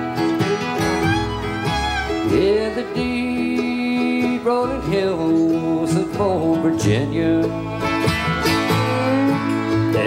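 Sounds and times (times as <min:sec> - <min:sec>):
bluegrass band playing slow song: 0:00.0 - 0:10.0
picked acoustic guitar: 0:00.0 - 0:10.0.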